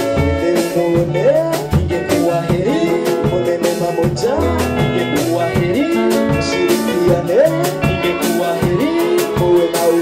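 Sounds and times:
drum kit beat: 0.0 - 10.0
electric guitar: 0.0 - 10.0.

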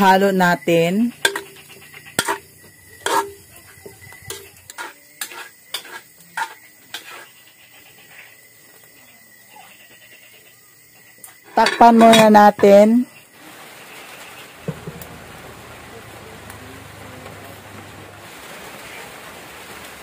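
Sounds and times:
metal ladle clanking in a pot: 1.2 - 2.4, 3.0 - 3.4, 4.3 - 6.6, 11.6 - 12.4.

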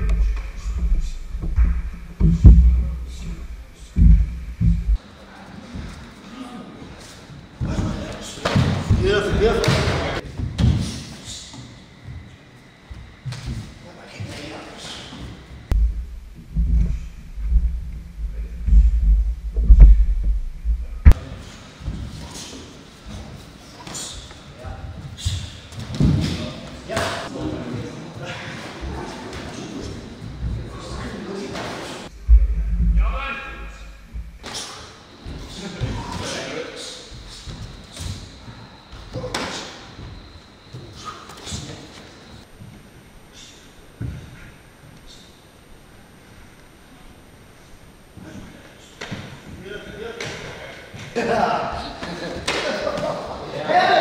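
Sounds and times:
low rumble: 0.0 - 5.0, 15.7 - 21.2, 32.1 - 34.4.

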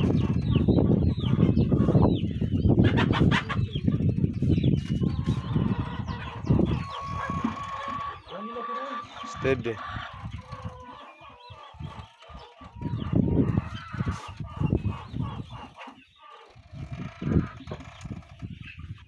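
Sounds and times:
chickens clucking: 0.0 - 19.0.

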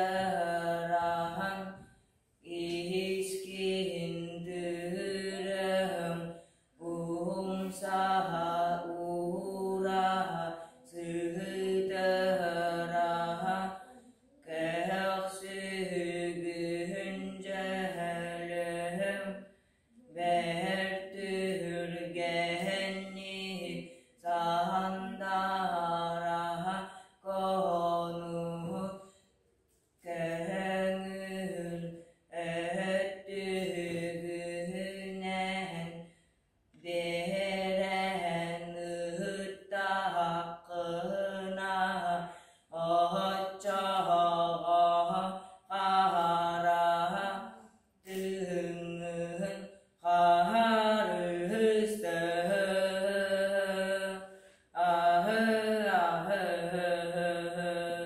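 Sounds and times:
boy singing unaccompanied: 0.0 - 1.8, 2.4 - 19.3, 20.0 - 28.9, 30.0 - 36.0, 36.8 - 54.2
breaths: 6.3 - 6.8, 19.4 - 20.0, 23.8 - 24.2, 26.8 - 27.2, 29.0 - 29.4, 36.0 - 36.5, 42.2 - 42.7, 45.3 - 45.7, 54.2 - 54.8.

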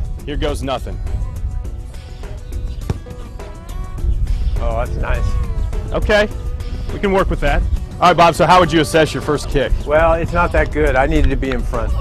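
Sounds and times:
background music: 0.0 - 12.0
sharp thump: 2.8 - 3.3.

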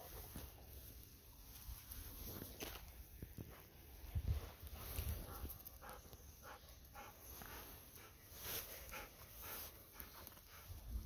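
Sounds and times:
faint dog sounds: 4.5 - 11.0.

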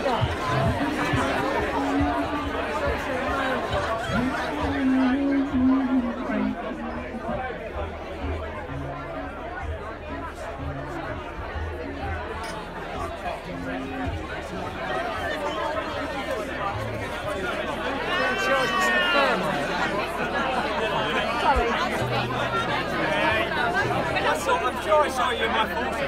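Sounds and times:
party crowd chattering: 0.0 - 26.0.

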